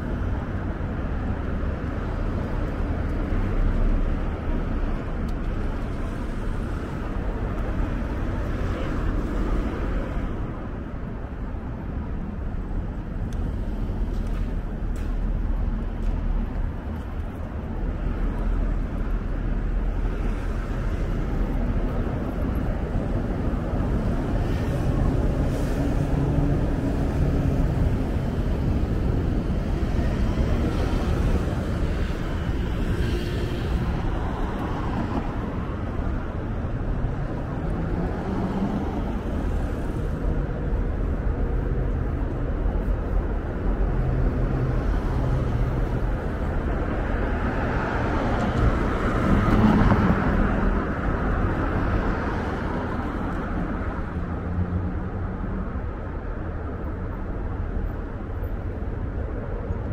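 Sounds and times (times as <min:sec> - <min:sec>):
traffic rumble: 0:00.0 - 0:59.9.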